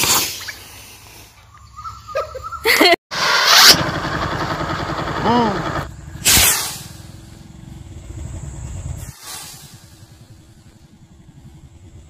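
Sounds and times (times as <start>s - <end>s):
firework rocket hissing: 0.0s - 1.0s, 6.2s - 7.4s, 9.0s - 10.7s
low rumble: 5.8s - 12.0s.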